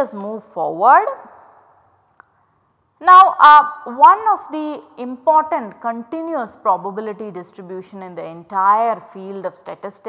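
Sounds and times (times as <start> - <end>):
woman speaking: 0.0 - 1.4, 3.0 - 10.0.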